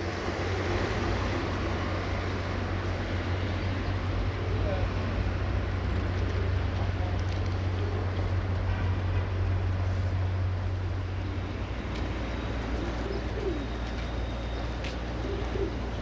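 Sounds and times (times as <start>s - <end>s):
doves cooing: 0.0s - 2.4s, 3.8s - 8.4s, 11.2s - 16.0s.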